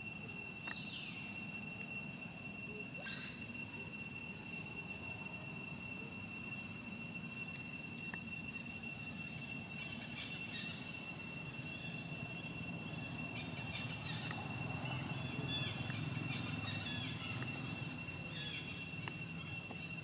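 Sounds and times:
high-pitched insect drone: 0:00.0 - 0:20.0
low background hum: 0:00.0 - 0:20.0
faint short chirps: 0:02.8 - 0:03.4.

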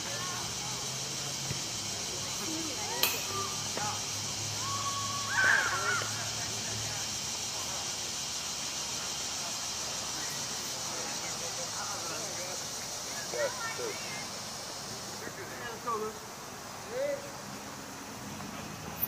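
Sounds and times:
faint distant voices: 0:00.0 - 0:19.0
steady high hiss: 0:00.0 - 0:19.0.

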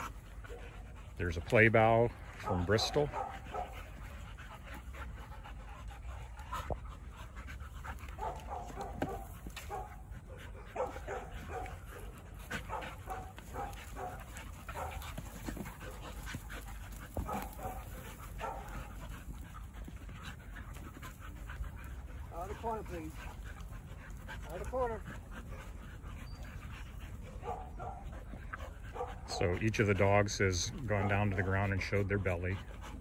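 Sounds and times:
dog vocal sounds: 0:00.0 - 0:33.0
dogs panting: 0:00.0 - 0:33.0.

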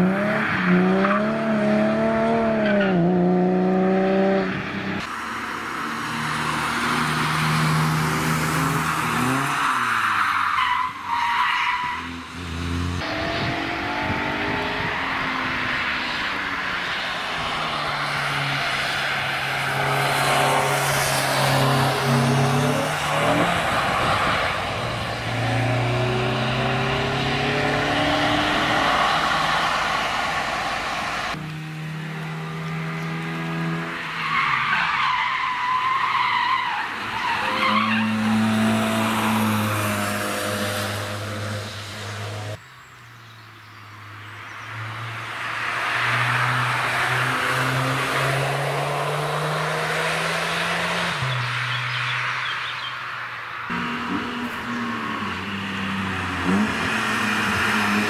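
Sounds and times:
race car engines revving: 0:00.0 - 0:42.6, 0:44.1 - 0:52.8, 0:53.5 - 0:58.0
tyres squealing and skidding: 0:05.3 - 0:31.4, 0:34.0 - 0:41.4.

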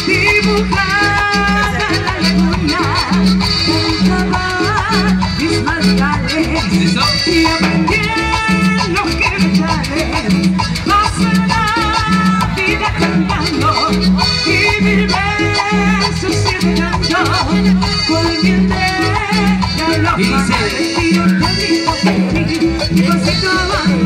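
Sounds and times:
live band playing latin dance music: 0:00.0 - 0:24.0.

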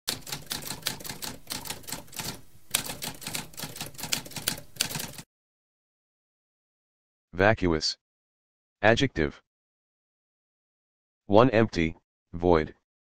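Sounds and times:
typewriter typing: 0:00.1 - 0:05.2.

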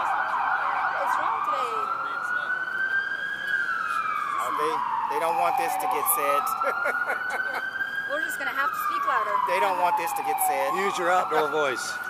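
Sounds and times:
emergency vehicle siren: 0:00.0 - 0:12.0
people talking: 0:01.0 - 0:02.5, 0:04.4 - 0:12.0.

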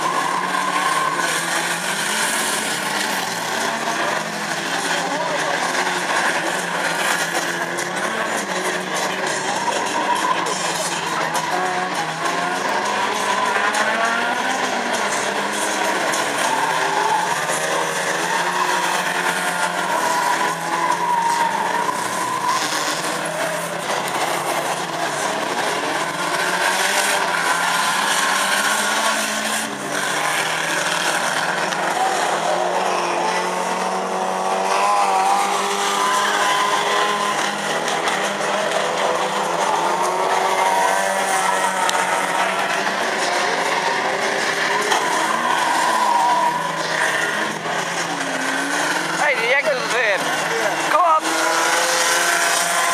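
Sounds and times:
racing car engines revving: 0:00.0 - 0:52.9
tyres squealing and skidding: 0:00.0 - 0:52.9.

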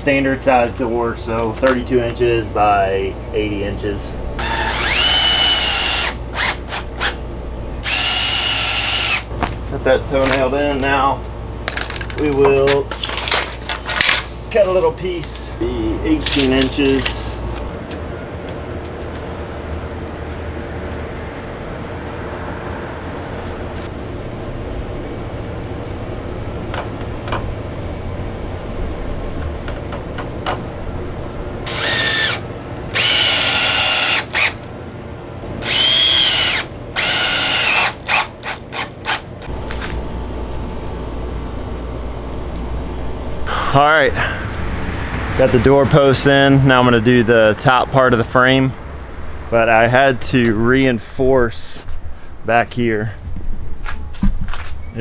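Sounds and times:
low steady background hum: 0:00.0 - 0:55.0
cordless drill driving screws: 0:04.4 - 0:07.2, 0:07.8 - 0:09.3, 0:31.7 - 0:34.6, 0:35.6 - 0:39.2.

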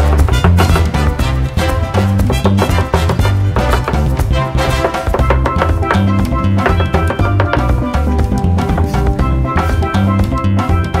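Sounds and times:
upbeat dance music: 0:00.0 - 0:11.0.

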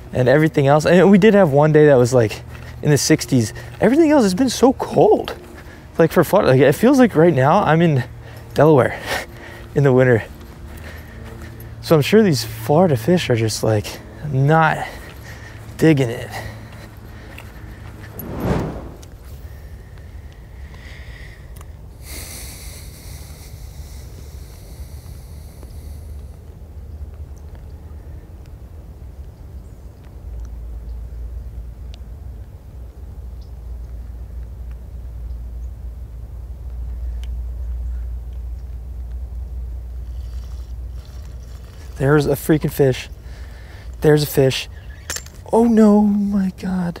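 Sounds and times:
wind rumbling on microphone: 0:18.0 - 0:19.3
short hissing: 0:18.1 - 0:19.2.

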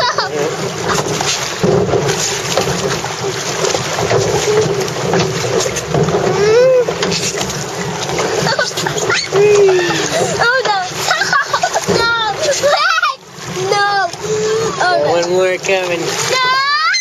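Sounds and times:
water rushing and splashing: 0:00.0 - 0:17.0.

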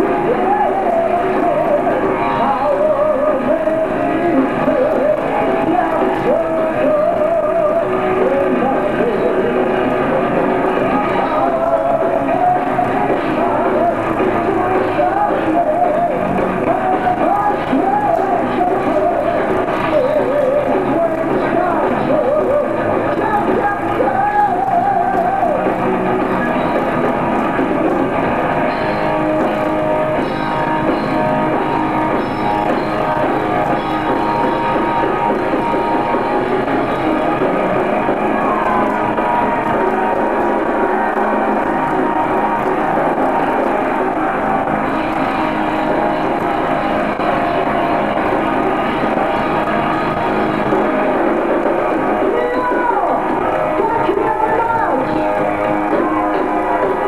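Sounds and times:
lead guitar with vibrato: 0:00.0 - 0:57.0
metal band playing: 0:00.0 - 0:57.0.

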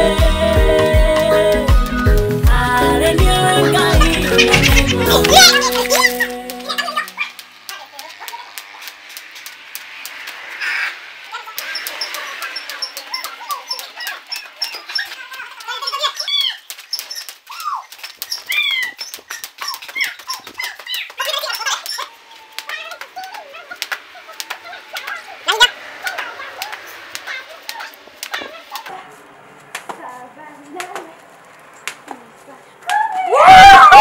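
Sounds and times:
voices calling and whooping: 0:00.0 - 0:29.7, 0:30.9 - 0:34.0
skipping rope slapping dirt: 0:00.2 - 0:33.1.

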